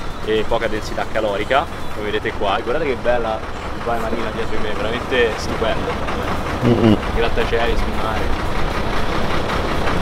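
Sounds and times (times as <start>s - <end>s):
city traffic roar: 0.0s - 10.0s.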